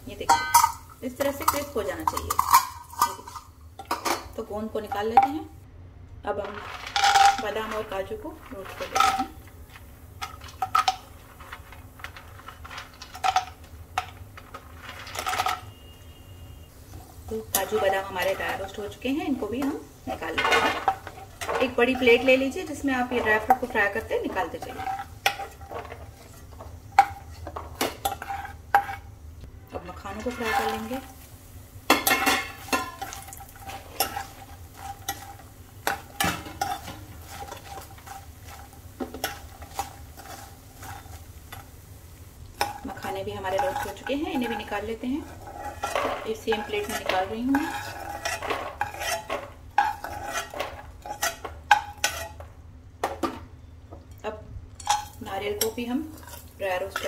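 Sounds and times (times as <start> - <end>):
light sizzle: 0.0 - 57.0
nuts clattering into a pan: 0.2 - 4.3, 6.4 - 15.9, 17.3 - 29.0
spatula scraping and knocking pan: 16.9 - 29.1, 31.9 - 41.8, 42.6 - 53.5.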